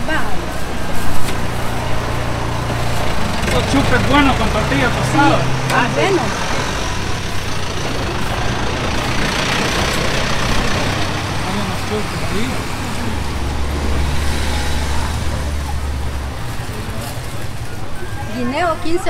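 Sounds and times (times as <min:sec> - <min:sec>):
street traffic noise: 0:00.0 - 0:19.0
vehicle engine running close by: 0:00.0 - 0:19.0.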